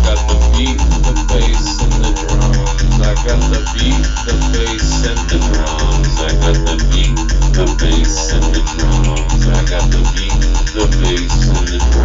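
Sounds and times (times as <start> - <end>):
drum and bass track: 0.0 - 12.0
fast repeating synth pattern: 0.0 - 12.0
sung vocal: 0.0 - 12.0.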